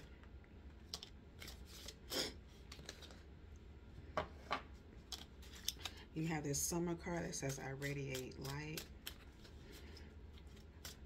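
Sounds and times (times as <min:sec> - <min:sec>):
low room hum: 0:00.0 - 0:11.0
cards rustling: 0:00.7 - 0:03.3, 0:05.0 - 0:11.0.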